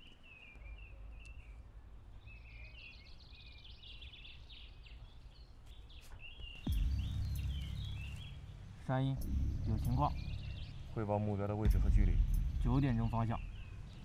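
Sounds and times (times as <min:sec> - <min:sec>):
birds chirping and singing: 0:00.0 - 0:14.0
louder low rumble: 0:06.7 - 0:14.0
low outdoor rumble: 0:06.7 - 0:14.0.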